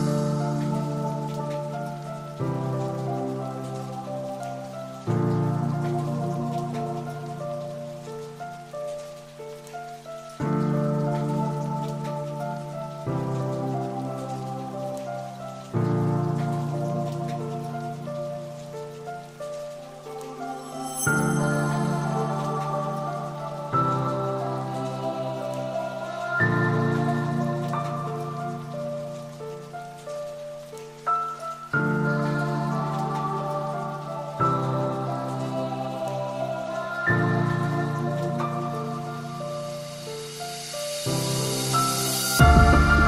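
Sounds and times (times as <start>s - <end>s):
rain-like patter: 0.0s - 43.0s
higher notes melody: 40.0s - 43.0s
held low chords: 42.4s - 43.0s.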